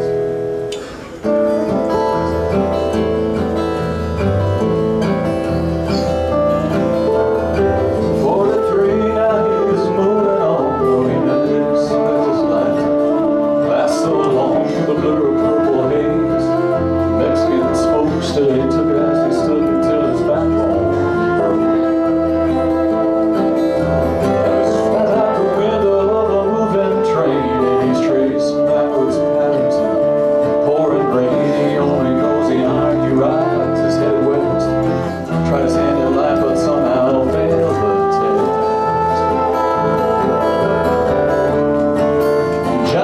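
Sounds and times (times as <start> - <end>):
strummed acoustic guitars: 0.0 - 43.0
flute holding long notes: 6.2 - 43.0.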